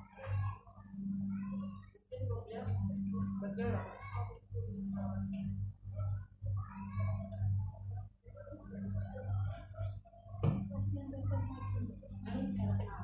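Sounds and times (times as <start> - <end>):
indistinct conversation: 0.0 - 13.0
steady low hum: 0.0 - 13.0.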